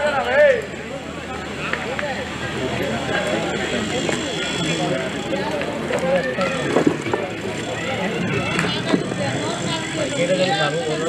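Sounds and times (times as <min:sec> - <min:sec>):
overlapping voices chatter: 0:00.0 - 0:11.0.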